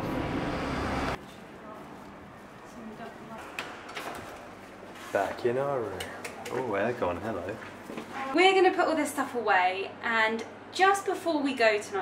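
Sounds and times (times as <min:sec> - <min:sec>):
street traffic noise: 0:00.0 - 0:01.5.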